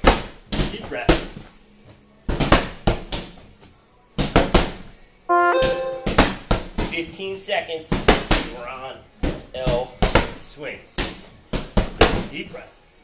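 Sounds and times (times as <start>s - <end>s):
short pitched music tones: 5.3s - 6.4s.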